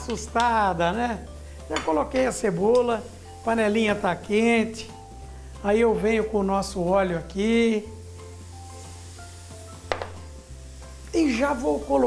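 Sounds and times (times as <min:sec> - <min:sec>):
oil and onion sizzling in a pan: 0:00.0 - 0:12.0
soft background music: 0:00.0 - 0:12.0
sharp knock: 0:09.9 - 0:10.2.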